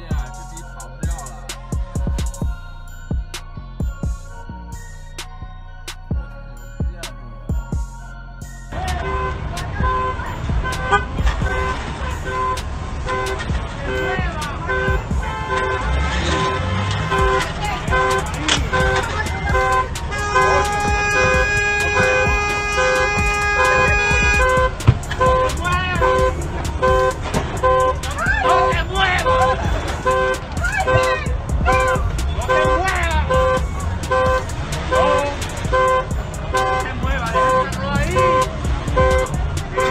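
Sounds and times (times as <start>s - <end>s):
people's voices: 0.0s - 3.4s, 8.7s - 39.9s
car horn pulsing: 8.7s - 39.9s
long horn blast: 8.7s - 39.9s.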